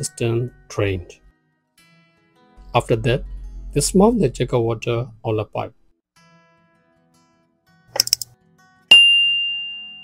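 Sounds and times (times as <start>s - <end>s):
acoustic guitar music: 6.2s - 8.9s
mouse clicks: 8.0s - 8.3s
bell ding: 8.9s - 10.0s.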